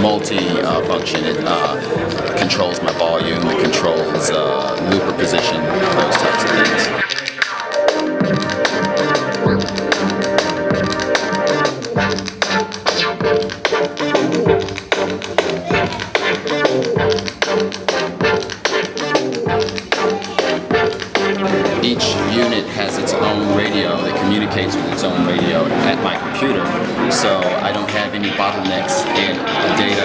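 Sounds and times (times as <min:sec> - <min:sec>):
looped drum beat: 0:00.0 - 0:24.1
synthesizer lead lines: 0:00.0 - 0:27.8.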